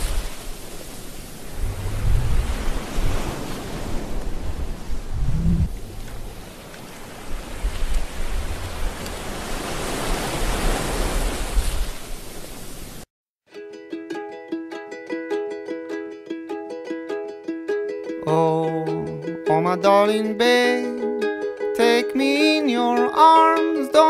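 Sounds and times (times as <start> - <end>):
loud rushing noise with rumbles: 1.5 - 6.5
plucked ukulele music: 13.5 - 24.0.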